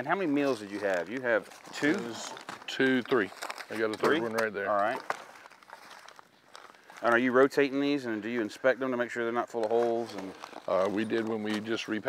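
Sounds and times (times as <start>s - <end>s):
plastic pouch handling: 0.0s - 12.0s.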